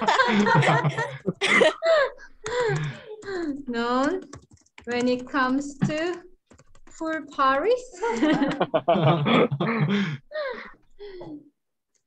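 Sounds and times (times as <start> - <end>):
person coughing: 9.1 - 10.2.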